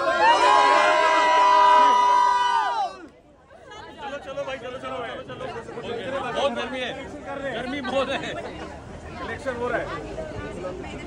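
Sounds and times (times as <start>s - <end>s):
women cheering and shouting: 0.0s - 3.1s.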